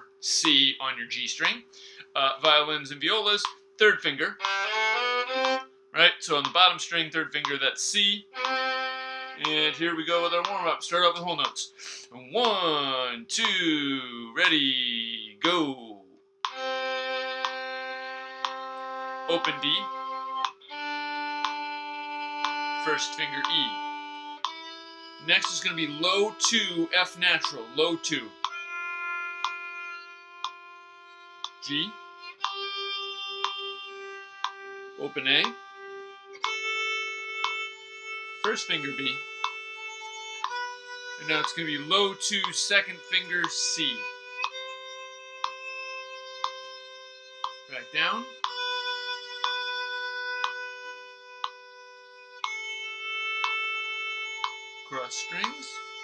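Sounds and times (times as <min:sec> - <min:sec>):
metronome clicks: 0:00.0 - 0:56.0
violin long bowed note: 0:00.0 - 0:56.0.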